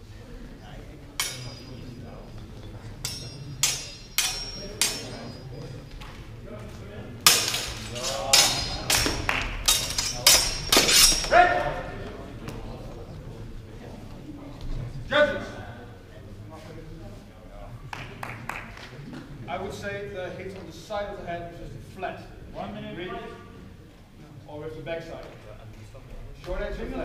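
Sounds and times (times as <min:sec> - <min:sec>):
steel swords clashing: 0:01.2 - 0:05.6, 0:07.2 - 0:11.9.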